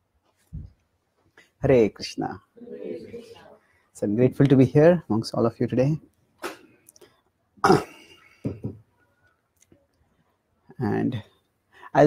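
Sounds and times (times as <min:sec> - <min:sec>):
short voiced throat sounds: 0:06.4 - 0:06.8, 0:07.6 - 0:08.1
man coughing: 0:07.6 - 0:08.7.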